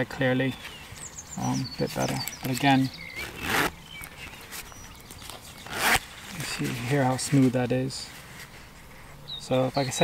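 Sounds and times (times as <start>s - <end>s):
zip pulled open: 2.3s - 3.8s, 5.6s - 6.6s.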